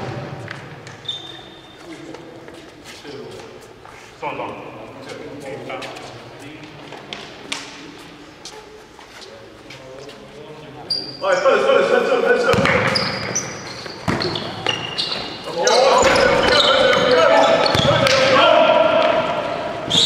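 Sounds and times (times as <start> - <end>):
sneakers squealing on floor: 0.0 - 2.3, 10.8 - 11.5, 12.4 - 20.0
players calling out: 11.2 - 20.0
basketball bouncing: 12.5 - 13.4, 14.0 - 14.9, 16.0 - 18.3.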